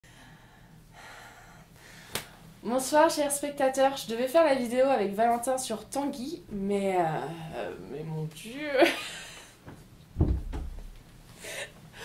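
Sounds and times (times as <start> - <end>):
faint human breath: 0.1 - 2.5
low room hiss: 0.1 - 12.0.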